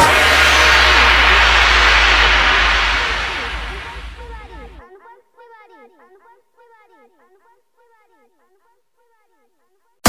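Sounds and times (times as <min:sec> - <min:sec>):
low bass drone: 0:00.0 - 0:04.8
white noise wash: 0:00.0 - 0:04.8.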